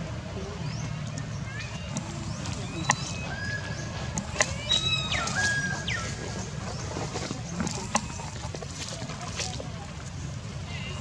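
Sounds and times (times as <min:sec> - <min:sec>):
macaques calling: 0:01.4 - 0:06.9.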